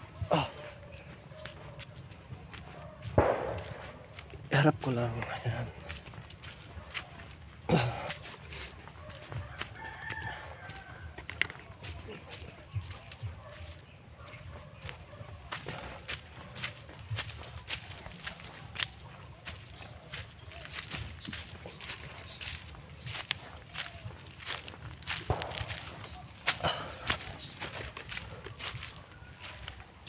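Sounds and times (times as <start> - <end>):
footsteps crunching: 0.0 - 30.0
rooster crowing: 8.9 - 12.0.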